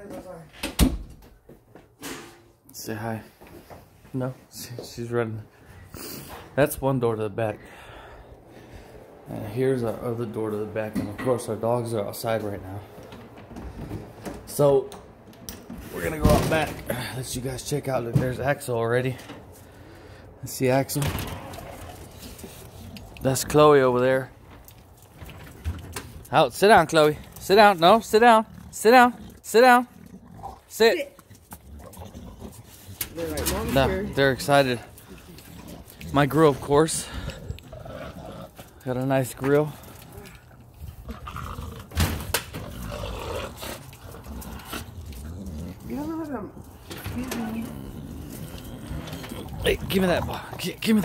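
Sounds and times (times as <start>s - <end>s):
outdoor background noise: 0.0s - 51.0s
door opening: 20.8s - 22.3s.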